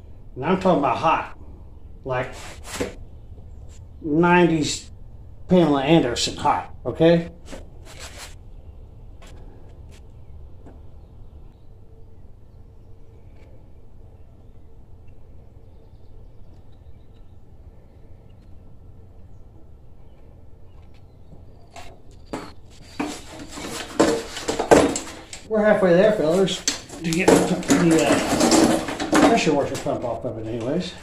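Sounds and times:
faint hum: 0.0 - 31.0
low background rumble: 3.0 - 22.7
hand tools clicking on metal: 23.0 - 25.5, 26.3 - 30.0.

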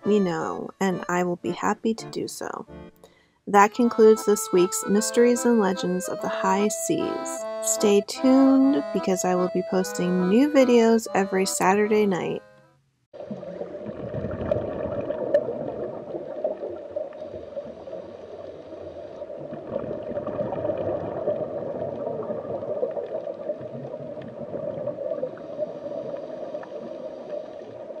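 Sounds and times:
muffled underwater water wash: 13.2 - 28.0.

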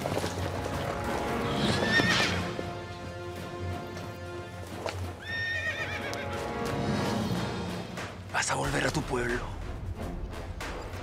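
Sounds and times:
horse whinnying: 1.4 - 2.7, 5.2 - 6.4.

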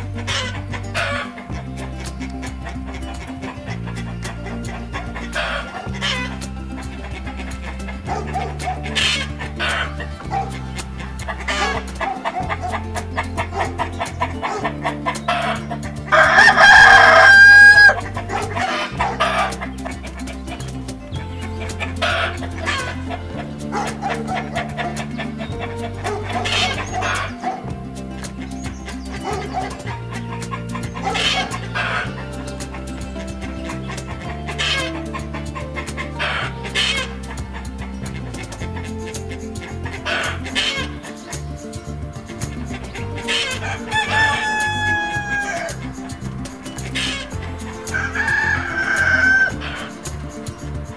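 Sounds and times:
background music with bass: 0.0 - 50.9
chicken calls and clucks: 0.0 - 50.9
rooster crowing: 15.4 - 19.5, 43.2 - 50.5.

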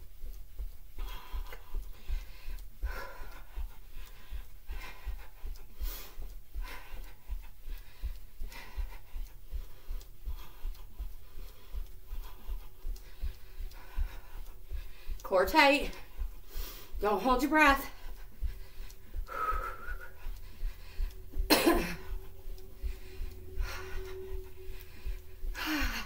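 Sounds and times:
bare feet jogging on carpet: 0.0 - 26.0
woman breathing hard: 0.2 - 17.0, 17.8 - 26.0.

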